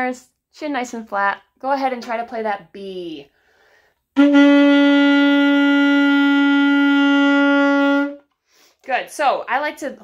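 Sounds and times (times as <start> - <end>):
alto saxophone long note: 4.2 - 8.2.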